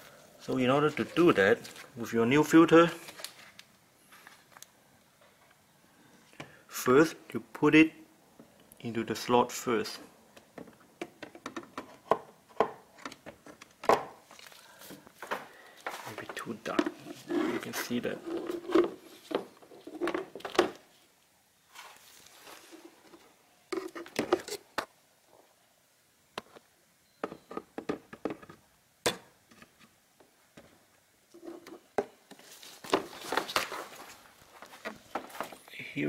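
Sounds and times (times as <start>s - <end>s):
plastic clicks and knocks: 10.6s - 14.1s
rustling: 14.2s - 24.9s, 31.3s - 35.7s.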